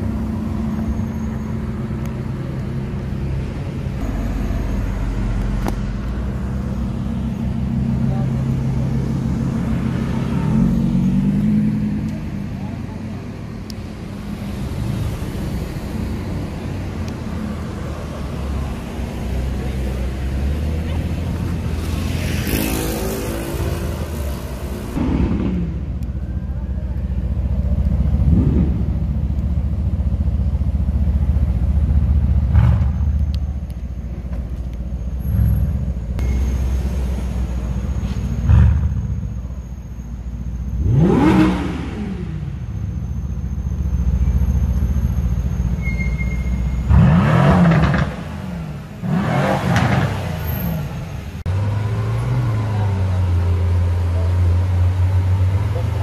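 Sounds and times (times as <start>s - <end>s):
car engine revving: 40.7s - 42.8s, 46.8s - 56.0s.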